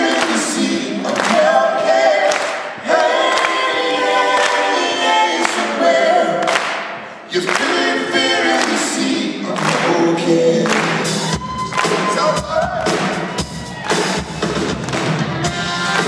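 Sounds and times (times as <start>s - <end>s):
group singing folk-rock: 0.0s - 11.2s
clapping beat: 0.1s - 1.5s, 2.3s - 2.7s, 6.4s - 7.9s, 8.5s - 12.2s, 13.9s - 16.0s.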